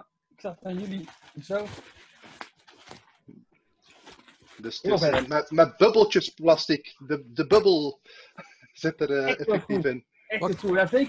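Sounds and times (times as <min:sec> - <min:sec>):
bubble wrap rustling: 0:00.4 - 0:04.9.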